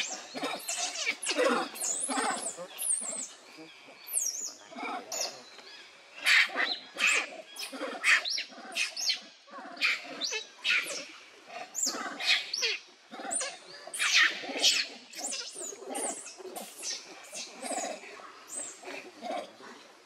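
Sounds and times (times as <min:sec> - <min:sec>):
monkeys screaming: 0:00.0 - 0:03.3, 0:06.2 - 0:09.1, 0:11.8 - 0:19.4.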